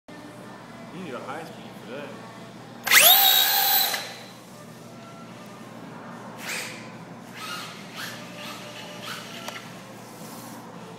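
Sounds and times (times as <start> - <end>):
toy truck wheels spinning: 2.9 - 4.2
electric motor whining: 2.9 - 4.3.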